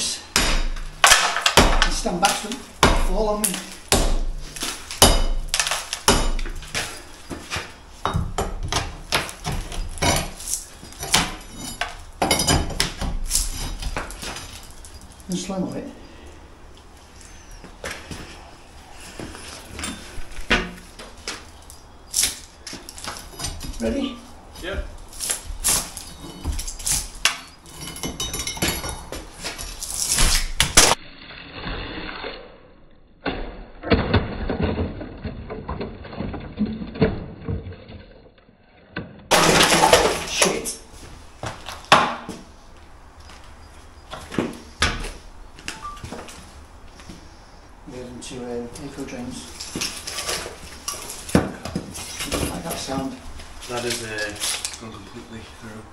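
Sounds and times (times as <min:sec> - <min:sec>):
brickwork falling with a crash: 0:00.4 - 0:15.0, 0:33.2 - 0:38.4, 0:39.0 - 0:40.8, 0:41.4 - 0:42.4, 0:49.5 - 0:54.8.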